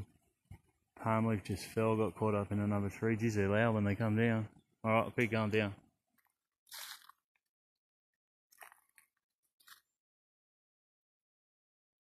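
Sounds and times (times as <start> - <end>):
footsteps crunching on dry leaves: 6.7 - 7.2, 8.5 - 9.8.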